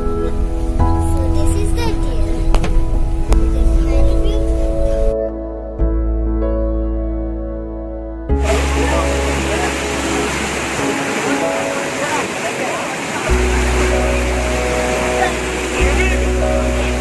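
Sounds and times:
background music with chords and bass: 0:00.0 - 0:12.2, 0:13.3 - 0:17.0
waterfall rushing over rocks: 0:08.4 - 0:17.0.

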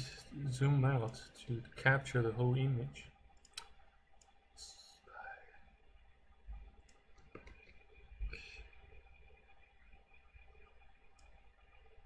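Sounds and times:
computer mouse clicks: 0:03.4 - 0:04.4, 0:11.1 - 0:11.4.

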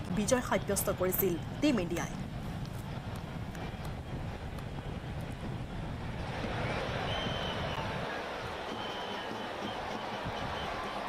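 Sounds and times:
low outdoor rumble: 0:00.0 - 0:08.9.

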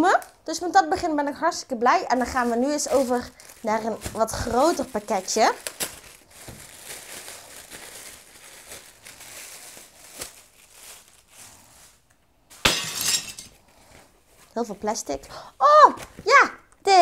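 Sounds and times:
plastic packaging crinkling: 0:01.9 - 0:13.6.

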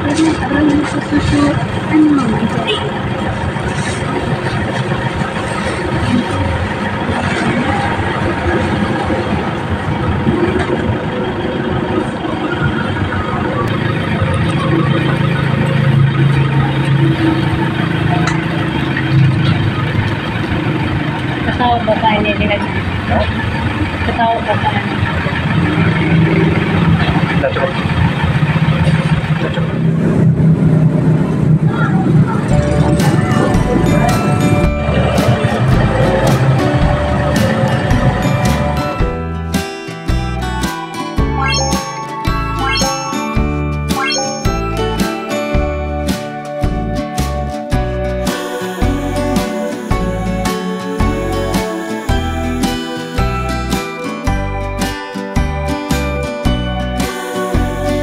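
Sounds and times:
indistinct voices: 0:00.0 - 0:28.0, 0:48.2 - 0:54.0, 0:57.0 - 0:58.0
vehicle engines humming: 0:00.0 - 0:58.0.

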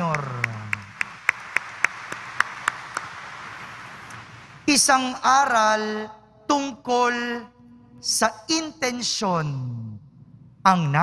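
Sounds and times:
close hands clapping: 0:00.0 - 0:04.6
crowd applauding: 0:00.0 - 0:04.6.

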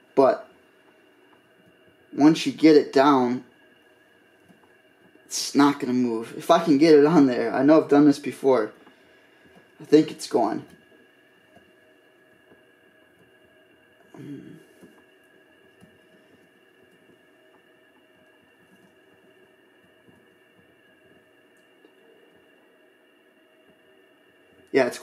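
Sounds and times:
steady faint hum: 0:00.0 - 0:25.0.

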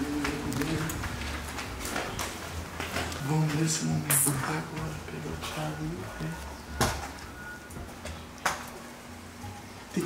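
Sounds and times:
footsteps climbing stairs: 0:00.0 - 0:05.7.

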